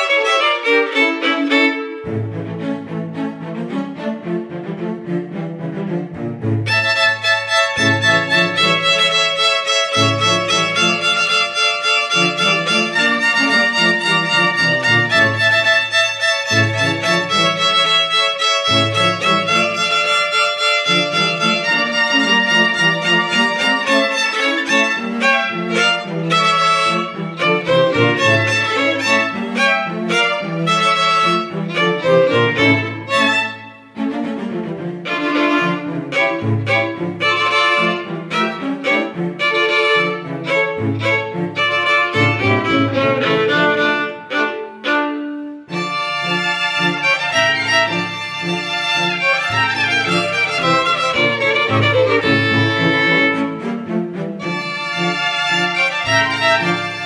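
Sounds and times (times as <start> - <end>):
cello bass notes: 0.0 - 57.0
violins playing melody: 0.0 - 57.0.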